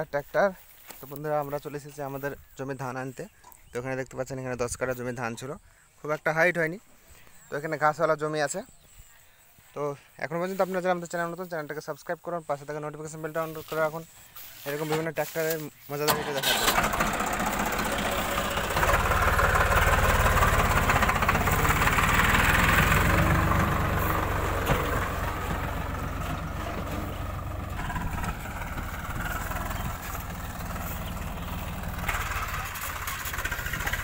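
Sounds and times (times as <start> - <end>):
tractor diesel engine running: 16.1 - 34.0.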